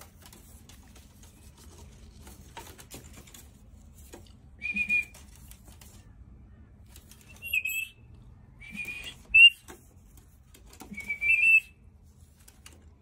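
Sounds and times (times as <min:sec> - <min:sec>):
parrot whistled chirps: 0:04.6 - 0:05.1, 0:07.3 - 0:08.0, 0:08.6 - 0:09.6, 0:11.0 - 0:11.8.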